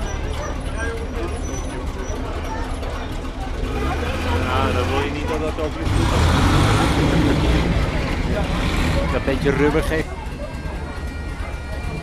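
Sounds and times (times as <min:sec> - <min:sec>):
military vehicle engines rumbling: 0:00.0 - 0:12.0.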